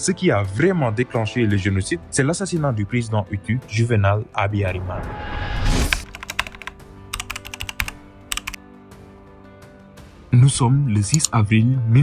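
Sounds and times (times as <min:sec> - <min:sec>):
faint background music: 0:00.0 - 0:12.0
keyboard typing clicks: 0:05.9 - 0:08.6.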